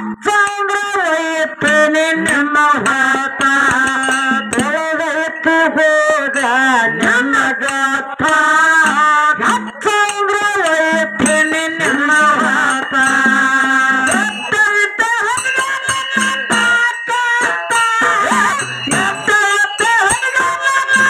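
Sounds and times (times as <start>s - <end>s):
harmonium: 0.0s - 21.0s
percussion: 0.0s - 21.0s.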